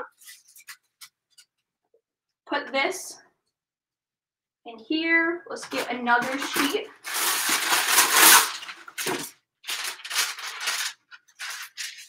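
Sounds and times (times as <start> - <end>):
paper rustling and crinkling: 0.1 - 1.5, 5.6 - 12.0.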